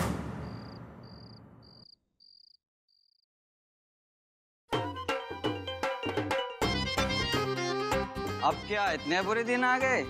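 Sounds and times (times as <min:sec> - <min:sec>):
faint cricket chirps: 0:00.3 - 0:03.3.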